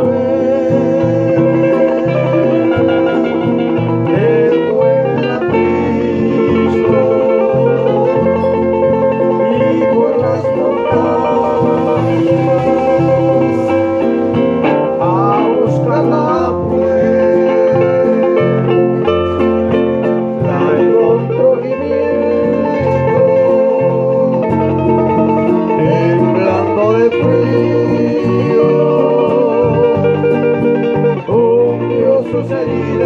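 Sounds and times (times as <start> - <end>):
acoustic guitars strumming: 0.0 - 33.0
picked guitar melody: 0.0 - 33.0.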